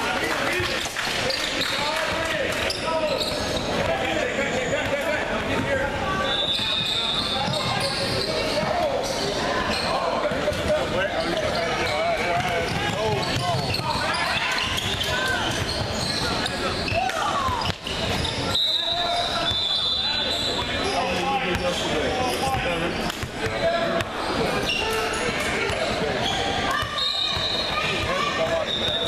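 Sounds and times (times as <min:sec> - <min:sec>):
crowd shouting and talking: 0:00.0 - 0:29.0.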